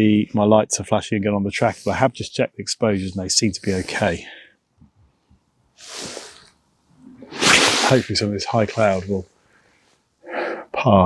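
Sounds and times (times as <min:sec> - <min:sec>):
person breathing: 0:05.8 - 0:06.6, 0:09.4 - 0:10.7.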